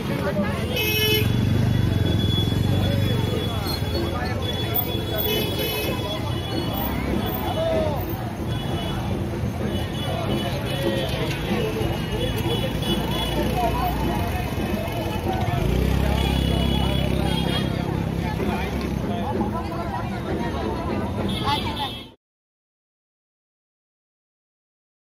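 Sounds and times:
crowd chatter: 0.0 - 22.2.

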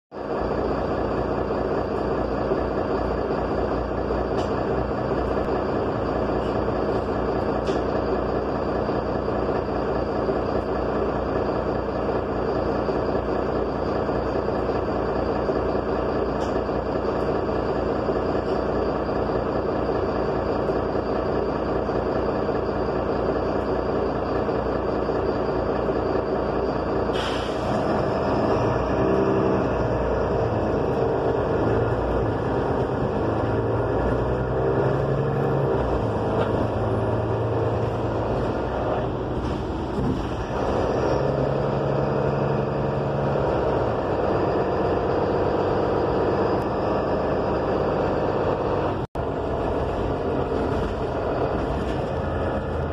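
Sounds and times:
bus engine drone: 0.1 - 52.9
compressed air hiss: 27.1 - 27.7.

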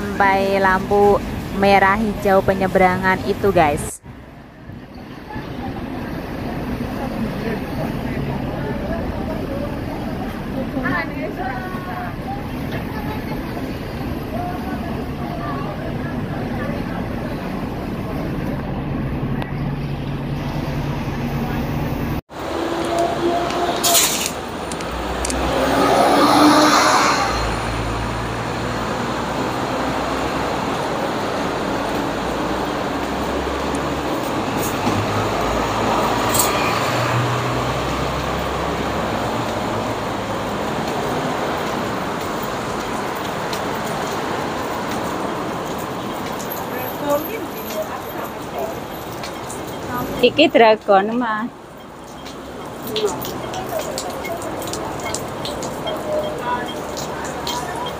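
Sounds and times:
buses and cars passing: 0.0 - 57.9
murmur of voices: 4.5 - 20.0, 52.5 - 57.9.

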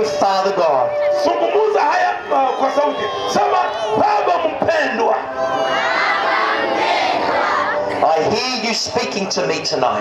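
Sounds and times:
crowd praying in unison: 2.9 - 8.4.

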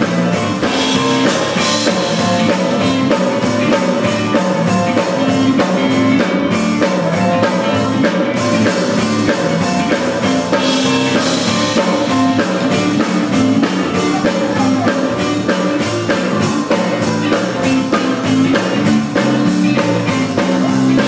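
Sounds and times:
drum kit: 0.0 - 21.0
electric bass: 0.0 - 21.0
electric guitar: 0.0 - 21.0
keyboard: 0.0 - 21.0.

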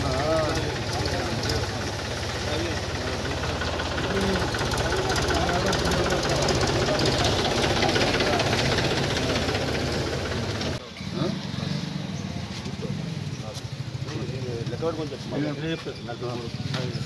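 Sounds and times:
engine idling with chugging: 0.0 - 17.0
indistinct voices: 0.0 - 17.0.

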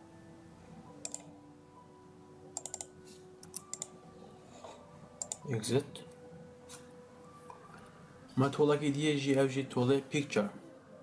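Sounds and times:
computer mouse clicks: 1.0 - 1.3, 2.6 - 3.9, 5.2 - 5.4
keyboard clicks: 1.0 - 1.3, 2.6 - 3.9, 5.2 - 5.5.

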